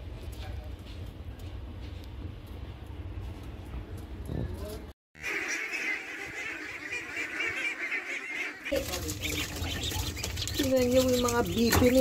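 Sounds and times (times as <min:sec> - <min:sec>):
ducks quacking: 0:05.2 - 0:12.0.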